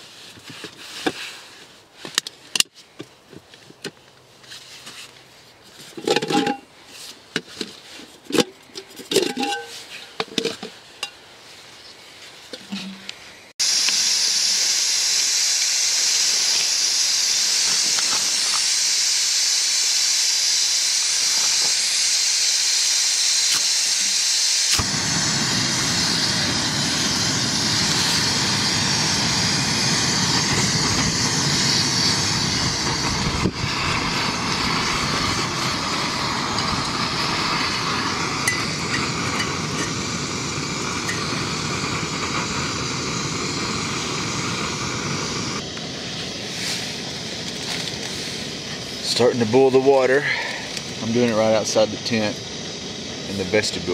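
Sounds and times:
stove flame rushing: 5.8 - 11.1, 12.6 - 53.9
gas hissing from burner: 5.9 - 11.2, 12.6 - 53.9.

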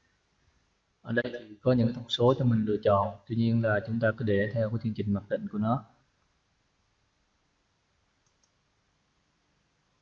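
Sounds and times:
computer mouse clicks: 8.2 - 8.6.

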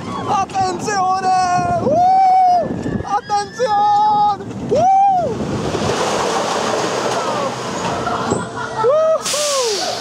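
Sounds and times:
roller coaster train rolling: 0.0 - 10.0
wind rushing: 4.2 - 8.6
riders whooping: 7.0 - 10.0.

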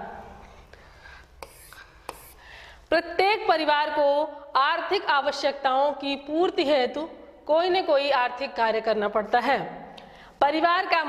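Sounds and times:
woman breathing softly: 0.4 - 2.9.

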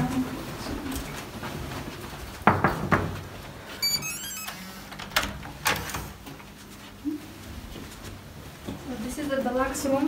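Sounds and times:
door lock beep tones: 3.8 - 4.7.

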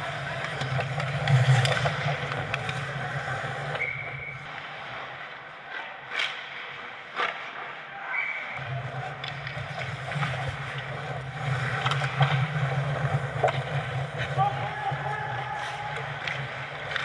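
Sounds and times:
hockey stick clacking puck: 0.0 - 7.8, 8.6 - 17.0
skates on ice: 0.0 - 17.0.

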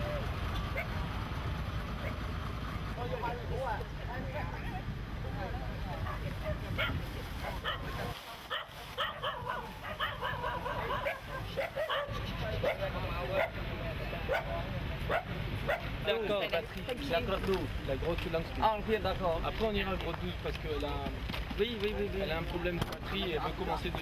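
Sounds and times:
low rumble of wind: 0.0 - 24.0.

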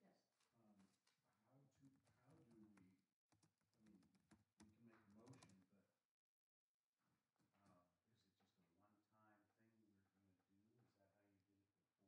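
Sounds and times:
faint distant voices: 7.5 - 11.4.

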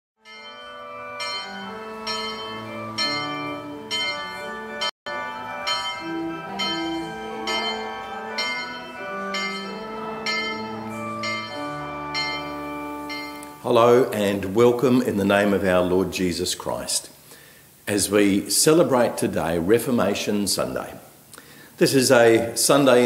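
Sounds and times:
church bells ringing: 0.2 - 14.3.

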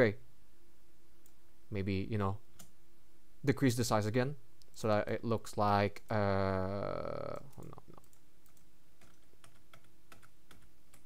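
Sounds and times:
keyboard keys clicking: 7.3 - 11.0.

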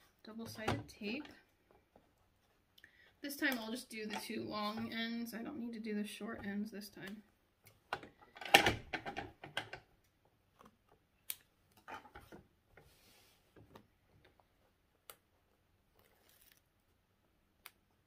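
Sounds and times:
tape and fabric rustling: 11.7 - 17.0.

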